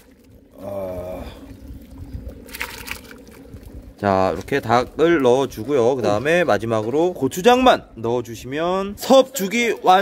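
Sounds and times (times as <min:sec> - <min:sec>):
food pouring into liquid: 0:00.0 - 0:05.6
person humming: 0:00.6 - 0:01.5.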